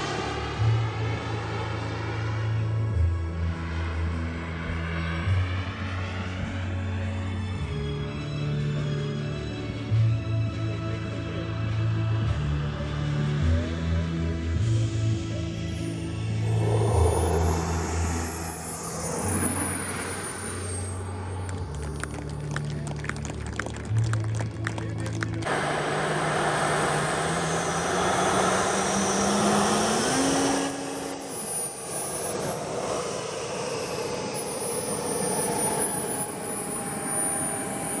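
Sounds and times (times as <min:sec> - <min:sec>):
low hum rising in pitch: 0:00.0 - 0:10.3, 0:12.3 - 0:38.0
background music with bass line: 0:00.0 - 0:19.9
jet turbine engines whining: 0:15.5 - 0:22.5, 0:25.5 - 0:38.0.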